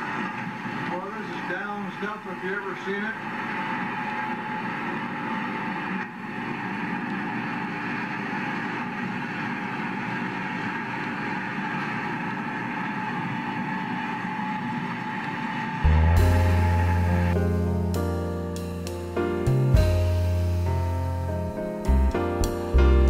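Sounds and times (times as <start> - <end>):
swather engine running: 2.0 - 20.7
piano music: 15.8 - 23.0.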